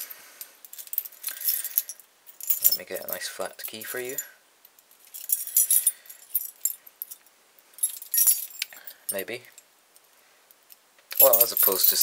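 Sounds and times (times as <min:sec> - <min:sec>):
metal keys jangling: 0:00.7 - 0:03.1, 0:05.0 - 0:07.2, 0:07.8 - 0:09.2, 0:11.1 - 0:12.0.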